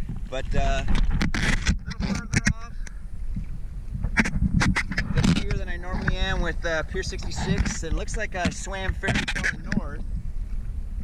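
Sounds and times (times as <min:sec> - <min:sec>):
waves splashing against camera: 0:00.0 - 0:11.0
wind rumble on microphone: 0:00.0 - 0:11.0.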